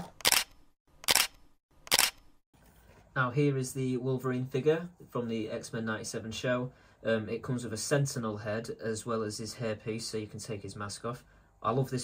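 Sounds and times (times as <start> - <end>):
camera shutter clicks: 0.0 - 2.3.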